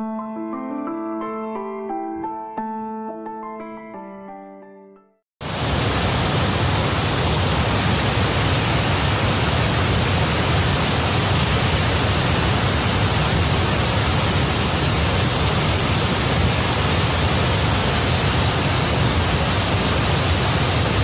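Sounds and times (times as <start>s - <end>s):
waterfall rushing: 5.4s - 21.0s.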